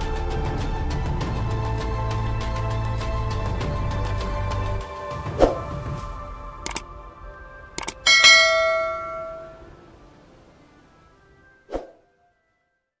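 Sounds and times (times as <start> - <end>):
mouse clicks: 7.8 - 8.0
bell chime: 7.8 - 9.8.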